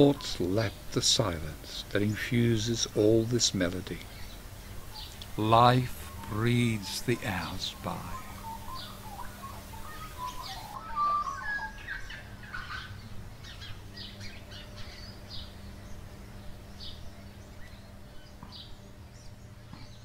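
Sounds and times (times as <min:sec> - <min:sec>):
birds chirping and calling: 0:00.0 - 0:20.0
faint low hum: 0:00.0 - 0:20.0
whistled bird notes: 0:03.9 - 0:15.9.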